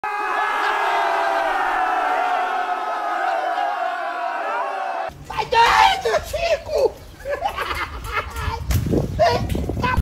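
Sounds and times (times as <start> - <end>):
crowd yelling: 0.0 - 6.0.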